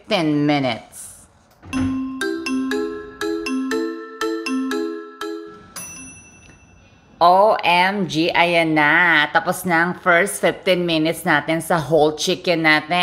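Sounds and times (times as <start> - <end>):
bell-like chiming jingle: 1.8 - 7.2
high bell ring: 1.8 - 7.2.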